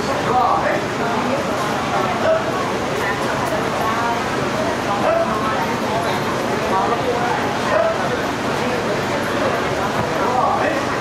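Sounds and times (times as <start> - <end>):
babble of many voices: 0.0 - 11.0.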